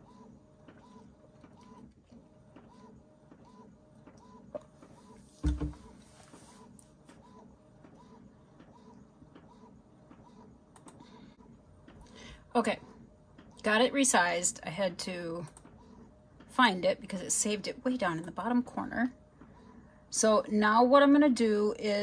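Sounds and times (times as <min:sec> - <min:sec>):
inkjet printer printing: 0:00.0 - 0:11.9, 0:14.8 - 0:19.9
thump: 0:05.4 - 0:05.8.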